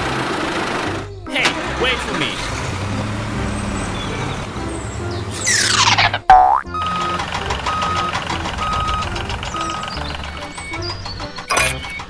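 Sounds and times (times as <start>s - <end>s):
children's background music: 0.0s - 12.0s
evenly spaced beeps: 5.4s - 12.0s.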